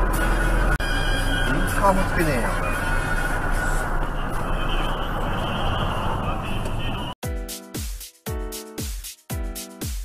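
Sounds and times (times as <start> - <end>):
vehicle engine and road noise: 0.0 - 7.2.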